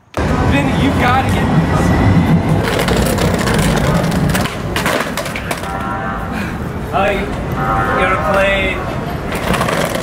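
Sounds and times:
skateboard wheels rolling on bricks: 2.4 - 5.8, 9.2 - 10.0
skateboard clacks: 2.6 - 5.8, 9.3 - 10.0.

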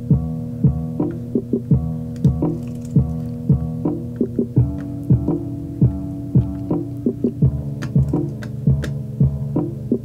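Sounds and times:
low kick drum thumps: 0.0 - 9.7
held synth chord: 3.2 - 9.8.

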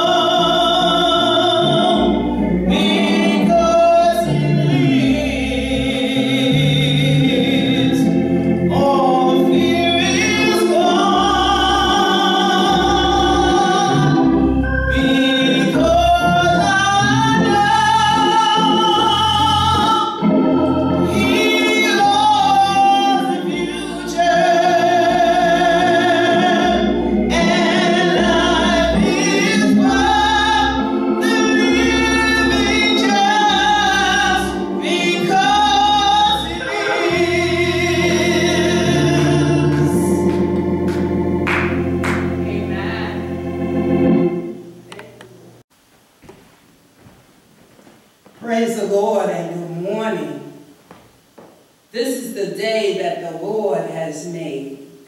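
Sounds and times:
low musical accompaniment: 0.0 - 45.6
organ playing low notes: 0.0 - 49.0
woman singing gospel: 2.7 - 20.2, 21.0 - 40.5, 42.1 - 43.3.

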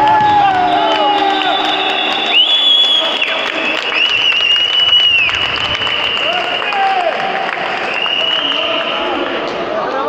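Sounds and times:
crowd noise: 0.0 - 10.0
high whistle blasts: 0.1 - 7.2, 7.8 - 9.2.

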